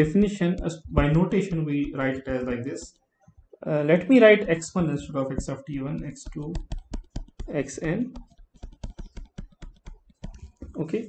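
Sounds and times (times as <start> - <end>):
stylus tapping on tablet screen: 0.0 - 11.0.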